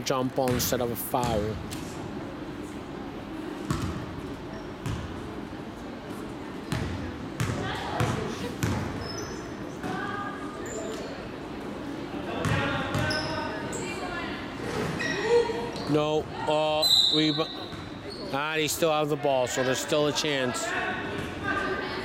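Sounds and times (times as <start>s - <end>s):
murmur of voices: 0.0s - 22.0s.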